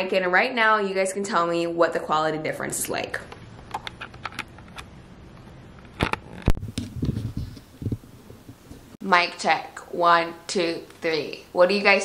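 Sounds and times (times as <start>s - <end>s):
camera handling rubbing and bumps: 3.6s - 4.9s, 5.8s - 8.9s.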